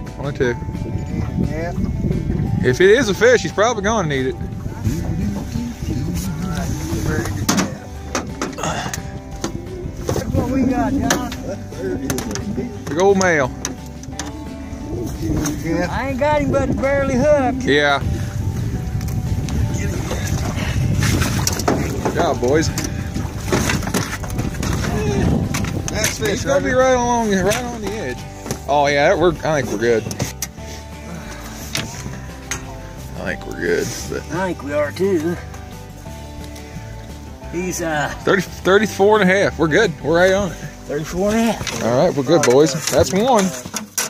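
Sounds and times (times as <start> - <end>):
wind buffeting microphone: 0.0 - 29.6
men talking indistinctly: 0.0 - 36.2, 37.2 - 44.0.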